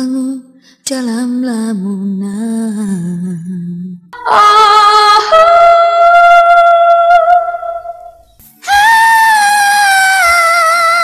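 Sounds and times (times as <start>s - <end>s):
woman singing long high note: 4.2s - 11.0s.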